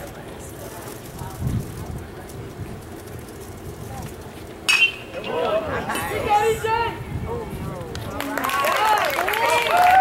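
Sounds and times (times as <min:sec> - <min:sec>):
metal bat hitting ball: 0:04.7 - 0:05.1
voices shouting and cheering: 0:05.1 - 0:10.0.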